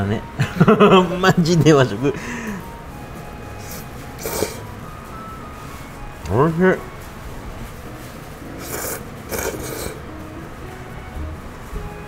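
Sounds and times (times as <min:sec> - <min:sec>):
person slurping noodles: 0:03.7 - 0:04.6, 0:08.6 - 0:10.0.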